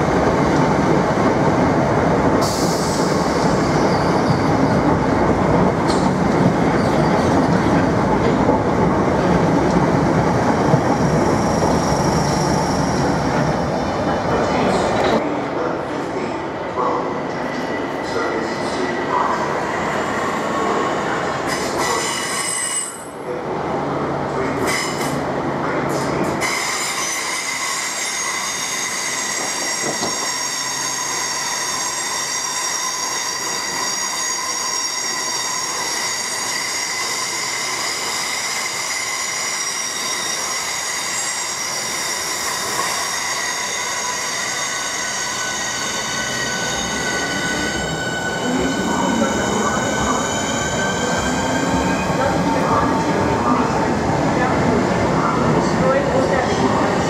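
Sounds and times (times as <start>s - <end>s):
high-pitched squeal: 26.5s - 52.2s.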